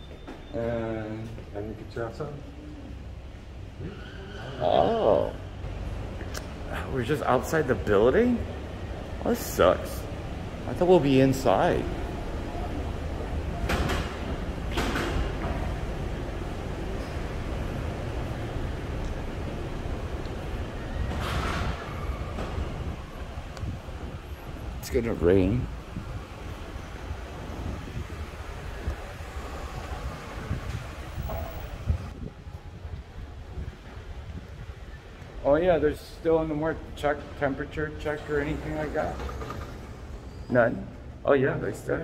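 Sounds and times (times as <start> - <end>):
wind buffeting microphone: 19.6 - 35.4.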